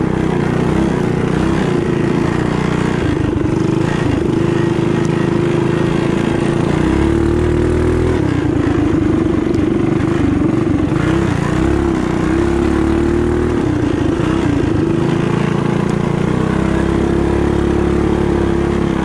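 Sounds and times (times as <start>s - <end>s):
mini bike engine at high revs: 0.0s - 19.0s.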